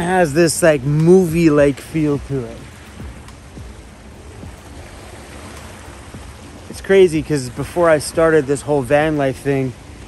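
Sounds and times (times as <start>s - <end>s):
small waves washing on pebbles: 0.0s - 10.0s.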